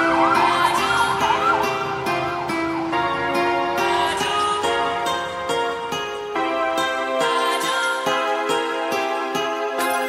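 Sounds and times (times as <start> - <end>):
siren-like wail: 0.0 - 4.1
held synth chords: 0.0 - 10.0.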